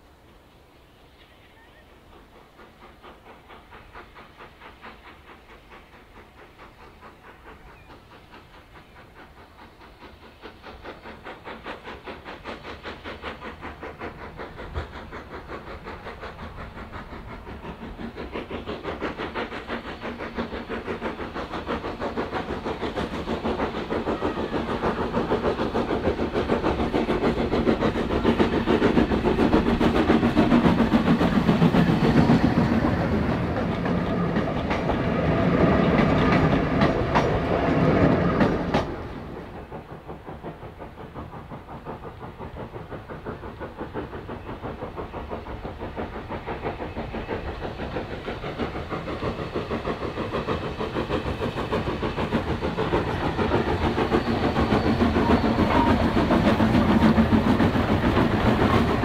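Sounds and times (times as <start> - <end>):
steam locomotive working: 0.0 - 59.0
wheels clicking on track: 1.2 - 59.0.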